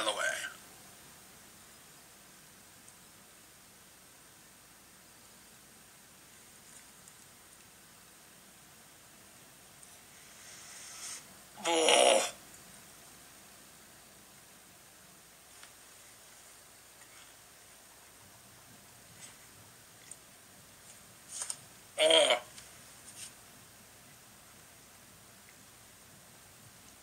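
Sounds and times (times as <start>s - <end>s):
breath drawn in: 10.0s - 11.3s.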